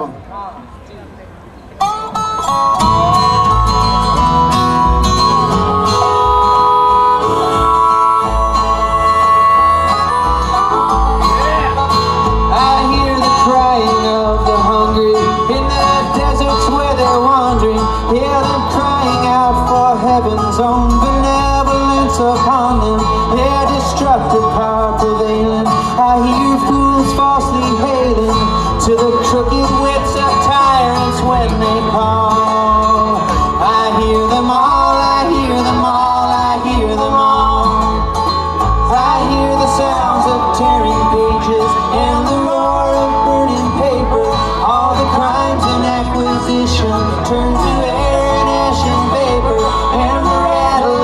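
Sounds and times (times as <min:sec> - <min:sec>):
bluegrass string band playing: 0:00.0 - 0:51.0
man singing into a microphone: 0:06.0 - 0:51.0.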